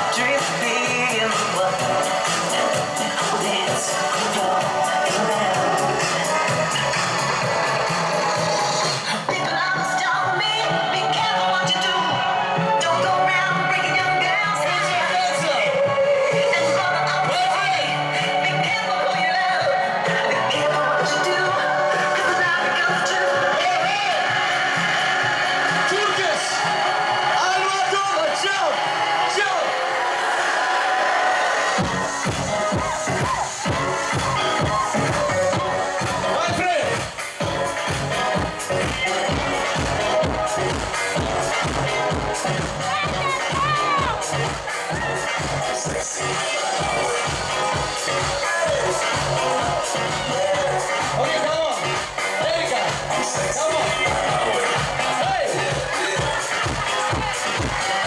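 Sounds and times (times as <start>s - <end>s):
bass drum beat: 0.0s - 10.6s, 31.8s - 58.0s
crowd voices: 0.0s - 58.0s
electronic dance music: 0.0s - 58.0s
vocals: 0.0s - 58.0s.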